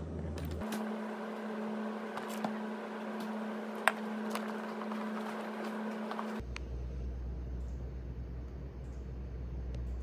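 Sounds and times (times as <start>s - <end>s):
mechanical hum of equipment: 0.0s - 10.0s.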